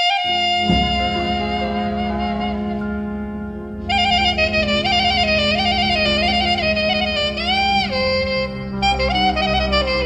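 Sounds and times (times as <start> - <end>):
ornamented clarinet melody: 0.0 - 10.0
held low accompaniment: 0.3 - 10.0.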